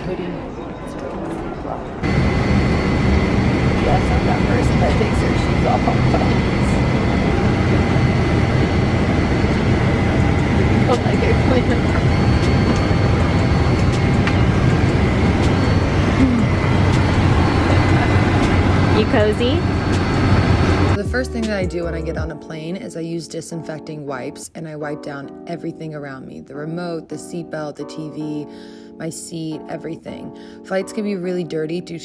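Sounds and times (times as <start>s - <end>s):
airliner cabin drone: 0.0s - 22.3s.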